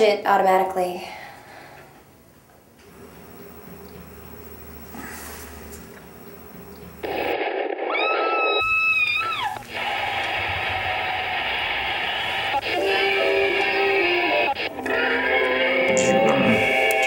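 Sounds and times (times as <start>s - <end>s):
television programme snatches: 9.5s - 15.2s.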